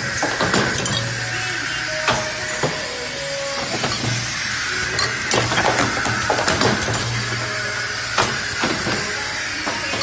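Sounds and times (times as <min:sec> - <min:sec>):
sharp pneumatic clacks: 0:00.0 - 0:01.2, 0:01.9 - 0:10.0
machine mechanical hum: 0:00.0 - 0:10.0.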